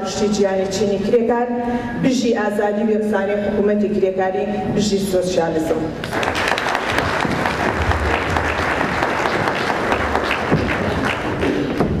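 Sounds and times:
audience applauding: 6.0s - 12.0s.

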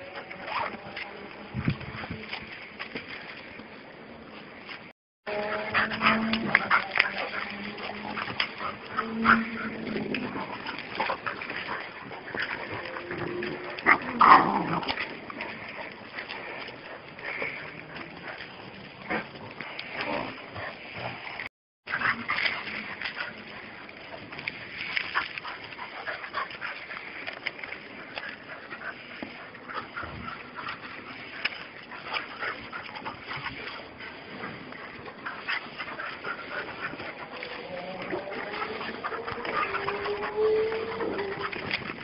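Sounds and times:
puppies scuffling on dirt: 0.0s - 42.0s
dogs jostling: 4.7s - 21.2s, 21.9s - 42.0s.

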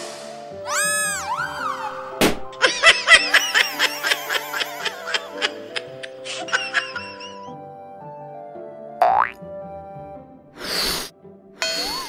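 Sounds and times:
children's background music: 0.0s - 12.0s.

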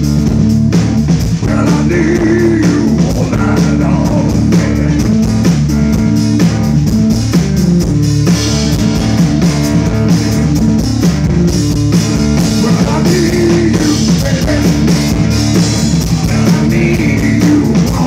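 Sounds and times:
drum and cymbal hits: 0.0s - 18.0s
electric piano: 0.0s - 18.0s.

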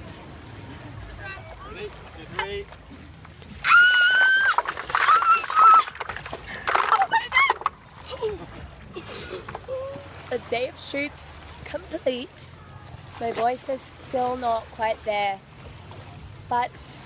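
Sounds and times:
water splashing: 0.0s - 17.0s
woman screaming: 3.6s - 5.9s.

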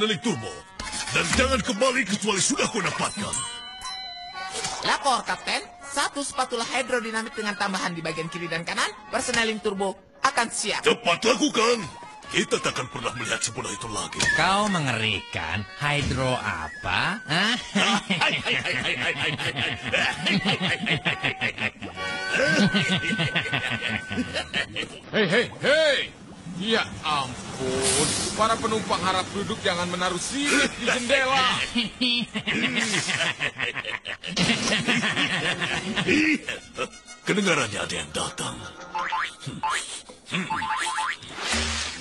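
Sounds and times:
cartoon voices laughing: 16.9s - 25.6s, 30.4s - 37.0s, 38.9s - 41.4s
hiss: 27.6s - 28.4s
springy boing glides: 40.5s - 42.0s.

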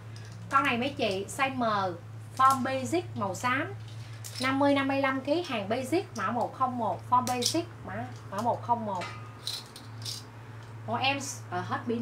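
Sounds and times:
steady low hum: 0.0s - 12.0s
plastic hangers clacking: 3.8s - 4.6s, 7.2s - 10.2s.

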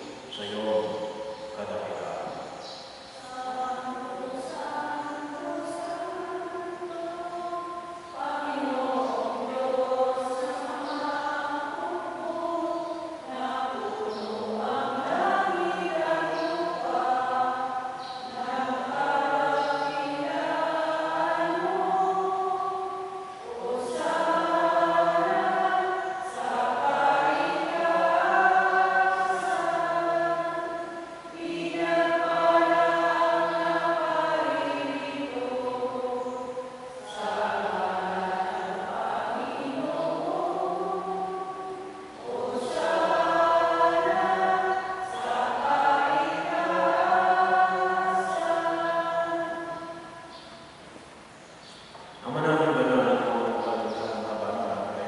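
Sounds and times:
choir singing a hymn: 0.0s - 51.3s, 52.1s - 55.0s.

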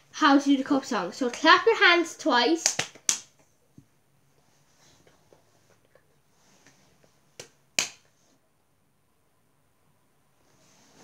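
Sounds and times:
hand clap: 2.6s - 3.4s, 7.4s - 8.1s.

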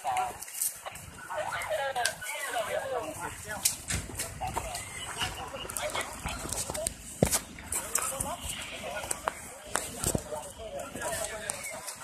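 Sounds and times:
people talking indistinctly: 0.0s - 12.0s
footsteps knocking and scuffing: 3.8s - 12.0s.

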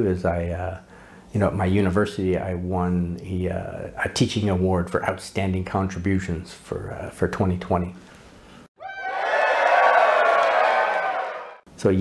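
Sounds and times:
crowd cheering: 8.8s - 11.6s.

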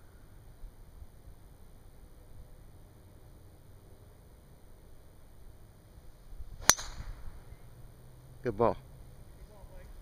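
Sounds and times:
golf club striking ball: 6.6s - 7.5s.

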